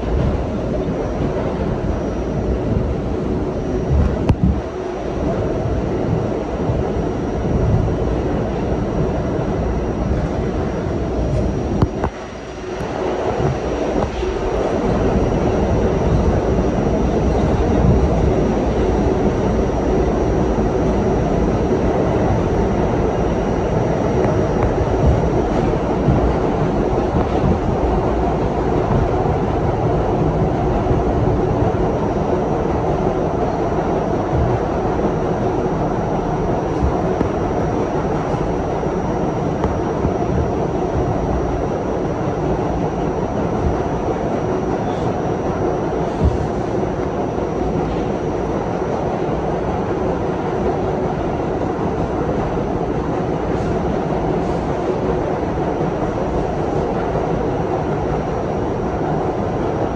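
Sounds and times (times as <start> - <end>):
subway train rumbling in tunnel: 0.0 - 59.9.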